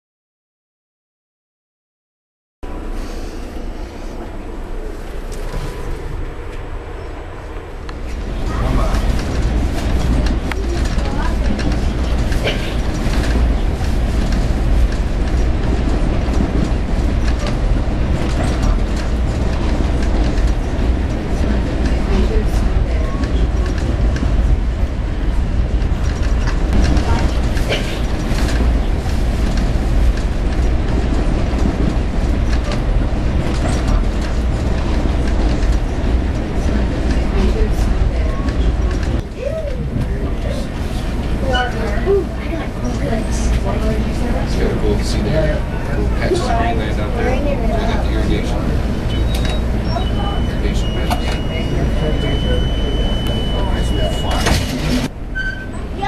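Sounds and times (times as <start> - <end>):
train car rumbling on rails: 2.6 - 56.0.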